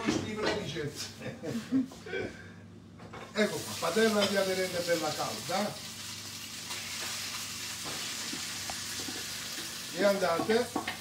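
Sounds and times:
food sizzling in oil: 0:03.4 - 0:11.0.

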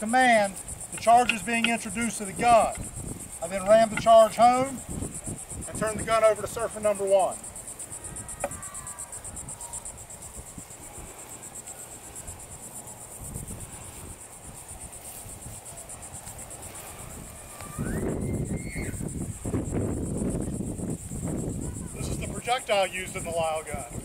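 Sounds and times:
insects trilling: 0:00.0 - 0:24.0.

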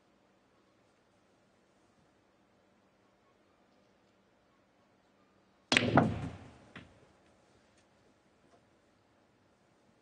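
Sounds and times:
cue striking ball with rattle: 0:05.7 - 0:07.0
small ball knock: 0:05.7 - 0:07.0.

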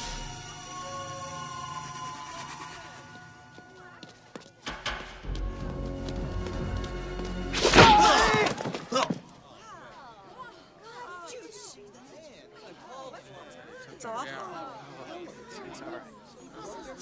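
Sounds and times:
film soundtrack music: 0:04.6 - 0:07.8
person shouting: 0:07.7 - 0:08.5.

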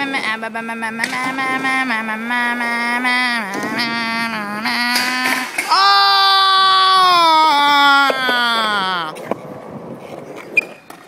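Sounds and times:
person singing wordless notes: 0:00.0 - 0:05.9.

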